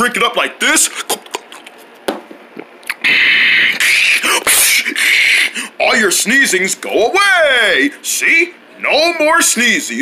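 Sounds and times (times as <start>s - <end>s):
person slurping and gulping: 1.0s - 1.8s.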